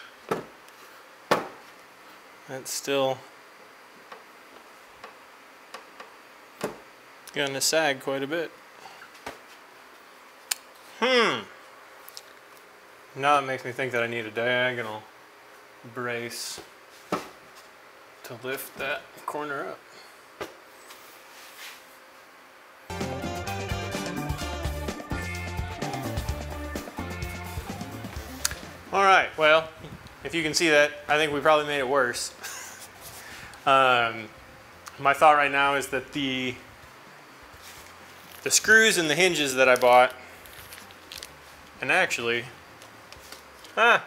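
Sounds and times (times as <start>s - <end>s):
soft rustle: 20.9s - 22.1s, 37.5s - 38.6s.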